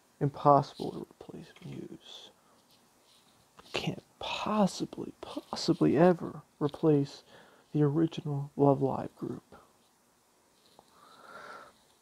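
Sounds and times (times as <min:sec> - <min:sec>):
faint nasal sniff: 0:10.6 - 0:12.0.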